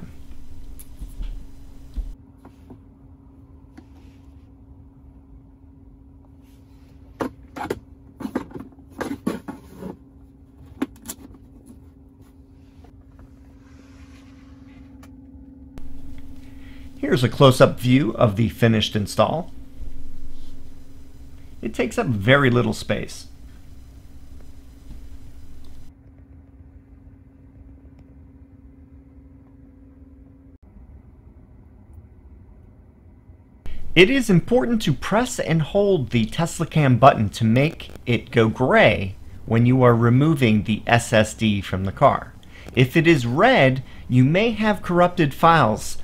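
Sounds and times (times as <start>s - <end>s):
steady low tone: 0.0s - 2.2s, 15.8s - 25.9s, 33.7s - 46.0s
steady low hum: 0.0s - 9.0s, 11.3s - 46.0s.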